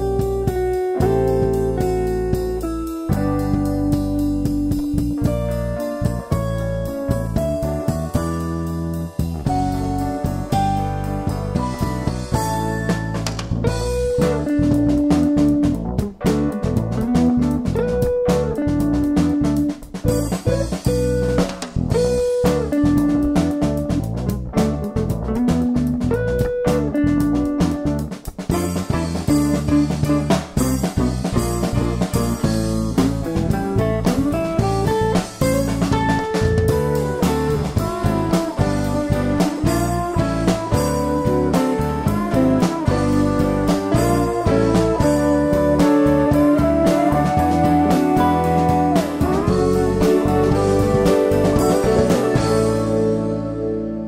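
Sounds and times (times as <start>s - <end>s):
guitar-led instrumental music: 0.0s - 54.0s.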